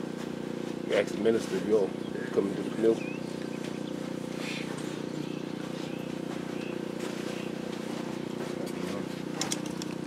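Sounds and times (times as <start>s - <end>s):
steady low hum: 0.0s - 10.0s
small birds chirping: 0.8s - 9.9s.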